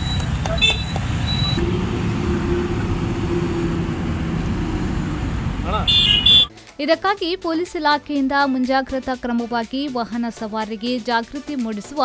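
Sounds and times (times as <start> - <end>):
vehicle engine drone: 0.0 - 6.4
highway traffic rumble: 0.0 - 6.5.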